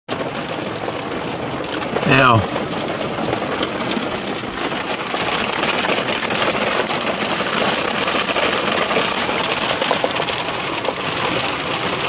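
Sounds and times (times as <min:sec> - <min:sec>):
heavy rain on car roof: 0:00.1 - 0:12.0.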